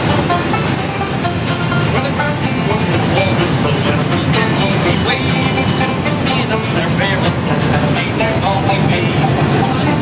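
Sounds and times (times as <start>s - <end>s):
airliner cabin drone: 0.0s - 10.0s
traditional band with banjo: 0.0s - 10.0s.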